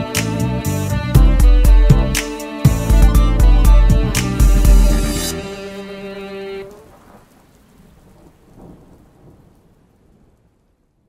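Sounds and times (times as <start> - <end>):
rain falling: 4.5 - 11.0
low rumbling thunder: 6.8 - 11.0.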